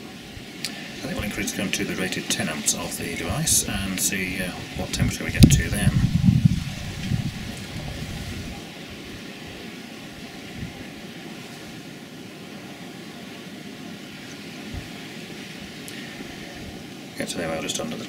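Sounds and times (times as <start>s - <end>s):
wind rumble on microphone: 3.1s - 9.6s, 10.2s - 10.9s, 14.7s - 15.0s.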